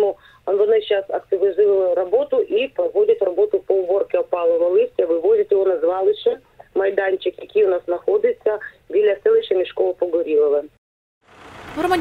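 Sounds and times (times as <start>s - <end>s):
woman talking over telephone: 0.0s - 10.8s, 11.8s - 12.0s.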